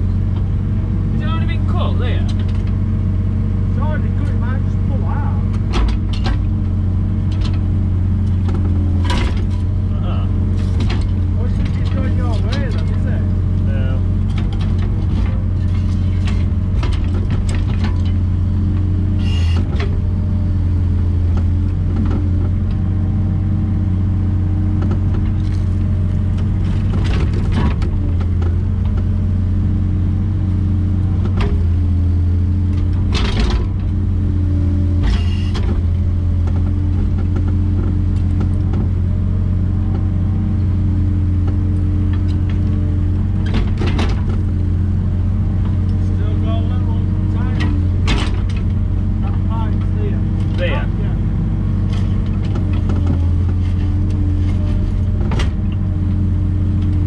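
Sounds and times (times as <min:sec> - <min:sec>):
diesel engine running: 0:00.0 - 0:57.0.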